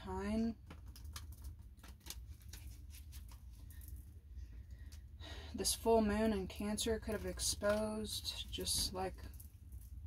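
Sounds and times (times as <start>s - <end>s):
playing cards being shuffled: 0.6s - 3.8s.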